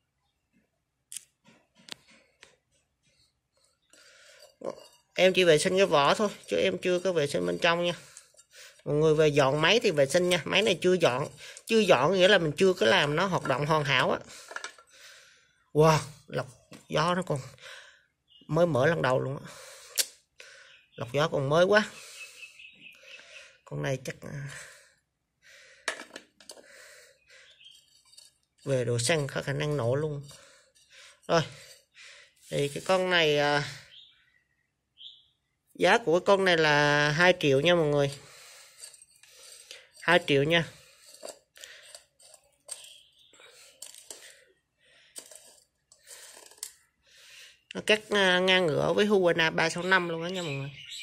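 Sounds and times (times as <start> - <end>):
soft breathing: 2.0 - 4.6.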